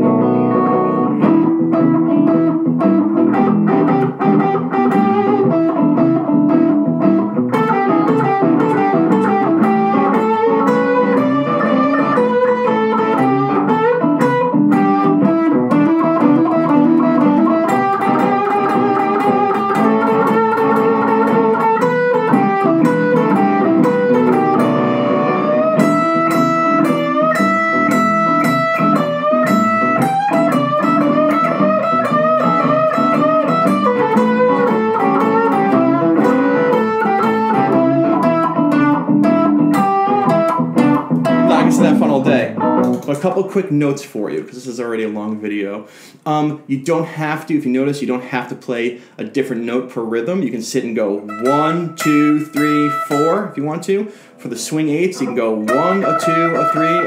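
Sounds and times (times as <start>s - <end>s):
electric guitar blues solo: 0.0s - 43.6s, 45.9s - 57.0s
backing track: 0.0s - 43.9s, 51.0s - 57.0s.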